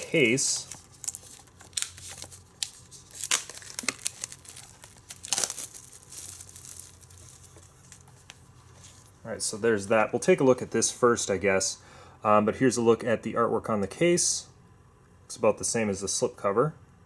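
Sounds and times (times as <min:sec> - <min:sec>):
plastic wrap ripping: 0:00.0 - 0:08.4
plastic wrap crinkling: 0:00.0 - 0:09.2.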